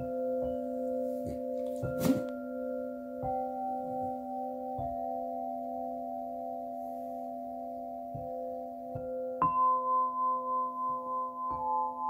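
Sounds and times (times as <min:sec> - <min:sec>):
crystal singing bowls ringing: 0:00.0 - 0:12.0.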